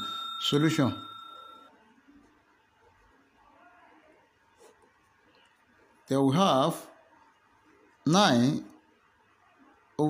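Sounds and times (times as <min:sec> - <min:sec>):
bell chime: 0:00.0 - 0:01.7.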